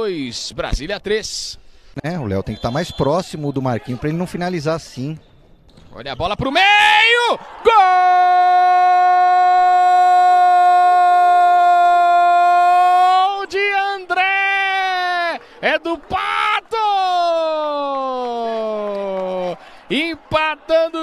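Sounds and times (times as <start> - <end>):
commentator yelling goal: 6.5 - 15.4, 16.0 - 19.5.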